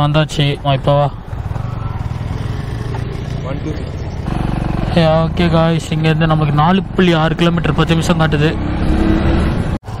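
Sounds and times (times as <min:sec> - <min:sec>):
motorcycle engine: 0:01.1 - 0:10.0.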